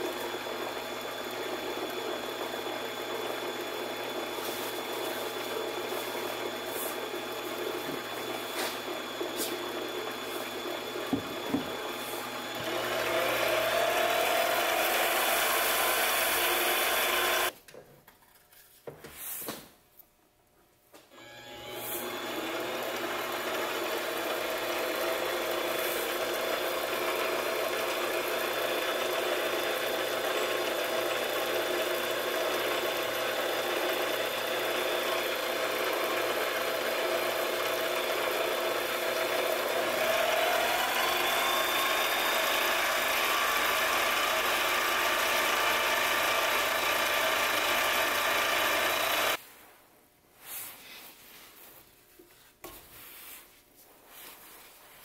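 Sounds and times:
lathe motor whining: 0.0s - 17.5s, 21.1s - 49.4s.

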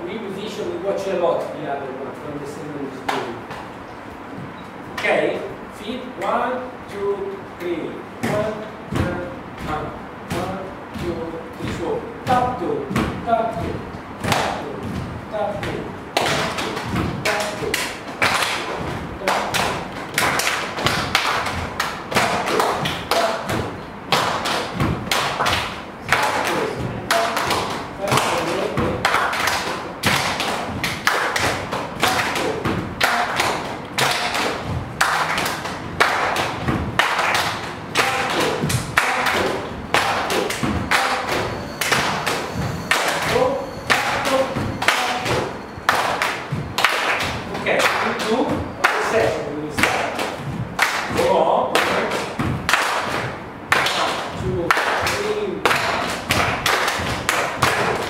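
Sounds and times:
bare feet stamping on floor: 8.2s - 54.5s
hand claps: 16.2s - 58.0s.

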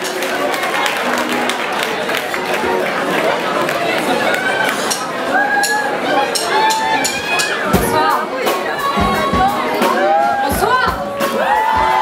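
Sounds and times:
crowd voices calling out: 0.0s - 12.0s
live band playing: 0.0s - 12.0s
drum beat: 6.3s - 12.0s.

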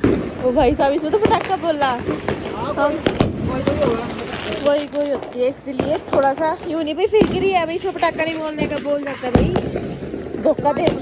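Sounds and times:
firecrackers cracking: 0.0s - 11.0s.

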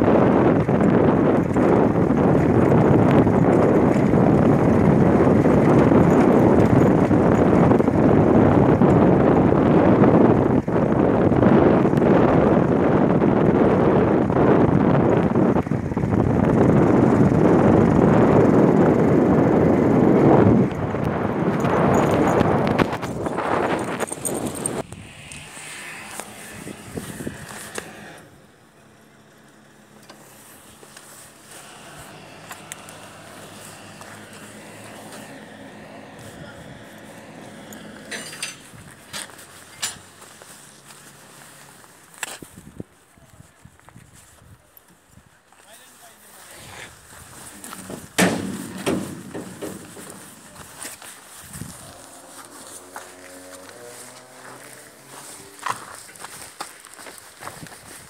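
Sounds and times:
travel noise buffeting microphone: 0.0s - 58.0s.

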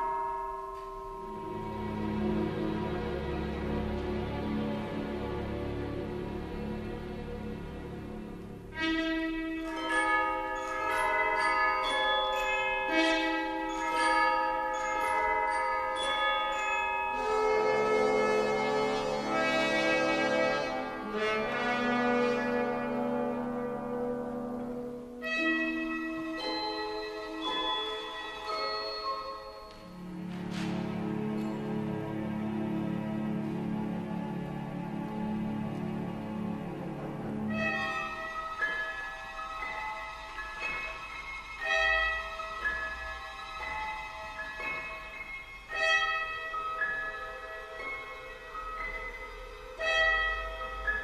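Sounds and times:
ringing bell-like struck tones: 0.0s - 2.3s, 9.6s - 18.8s, 37.6s - 51.0s
orchestra playing slow music: 0.0s - 51.0s.

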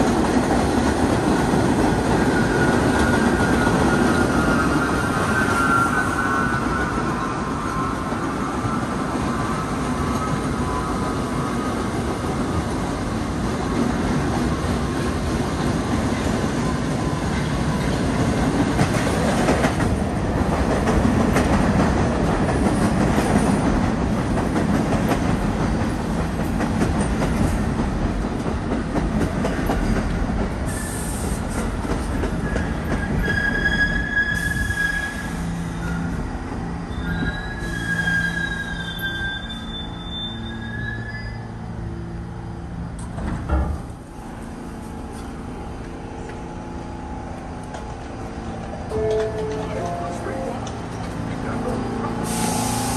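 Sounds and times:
train wheels rumbling on rails: 0.0s - 52.9s
wheel and brake squeals: 2.2s - 11.9s, 32.3s - 42.1s.

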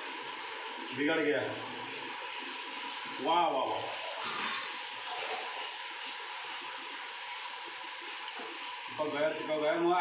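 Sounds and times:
frying in hot oil sizzle: 0.0s - 10.0s.

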